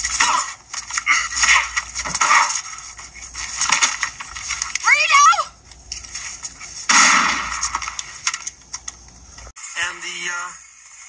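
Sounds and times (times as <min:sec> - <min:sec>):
sharp clicks: 0:07.8 - 0:09.5.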